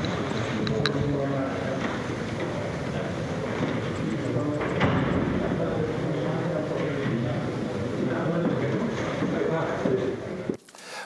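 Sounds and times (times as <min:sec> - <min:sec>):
steady rumbling noise: 0:00.0 - 0:10.7.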